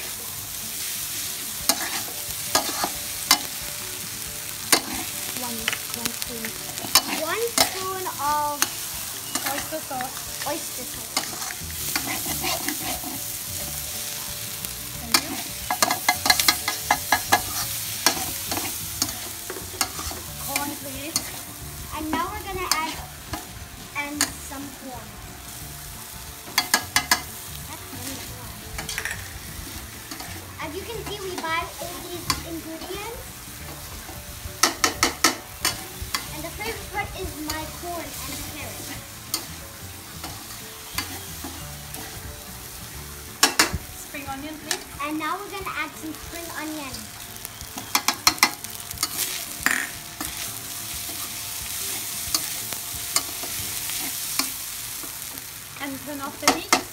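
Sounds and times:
spatula scraping wok: 0.0 - 55.6
rice sizzling in wok: 0.0 - 56.9
spatula clacking on pan: 1.7 - 3.5, 15.1 - 20.3, 26.5 - 27.3, 34.6 - 36.8, 40.2 - 42.2, 43.4 - 43.8, 47.8 - 51.4, 52.2 - 55.4.

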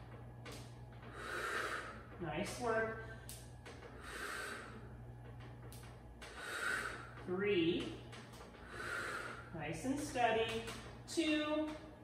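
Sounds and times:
woman breathing hard: 1.0 - 2.2, 3.0 - 5.4, 6.2 - 7.2, 8.4 - 9.5.

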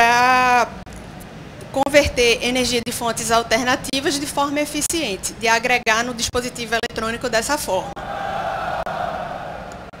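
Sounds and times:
event hall background hum: 0.0 - 10.0.

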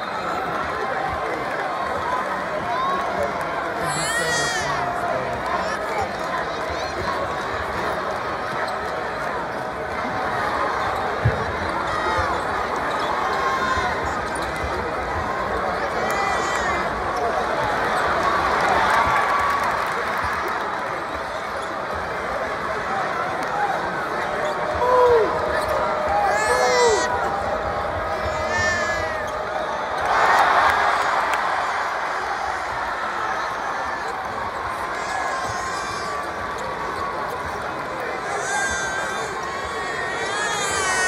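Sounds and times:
crowd chatter: 0.0 - 41.0.

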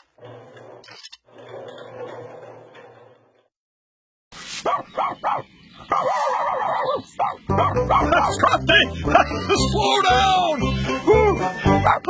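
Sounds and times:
cartoon dog barking: 4.6 - 8.5, 11.7 - 12.0.

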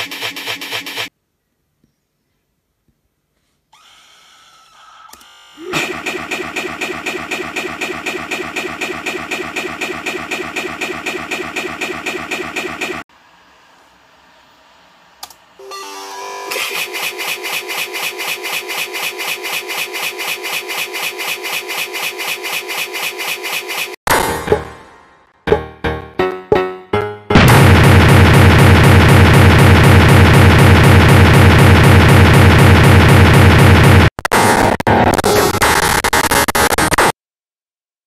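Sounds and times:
harsh pulsing electronic sound: 5.6 - 13.0, 27.4 - 37.1.

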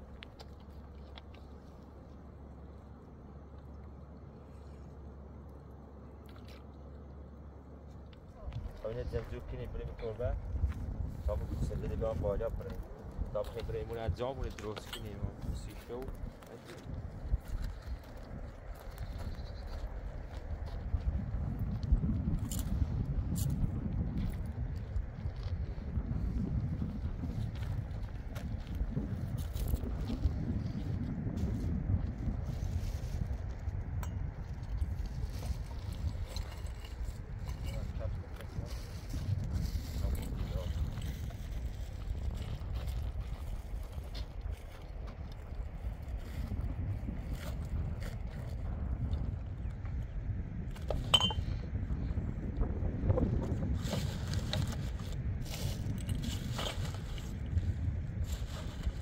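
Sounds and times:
wind buffeting microphone: 8.2 - 59.0.

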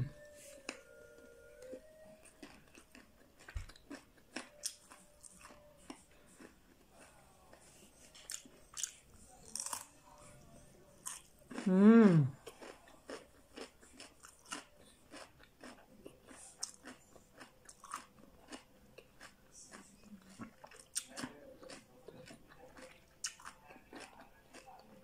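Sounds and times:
person chewing crunchy vegetables: 1.6 - 10.2, 11.0 - 25.0.

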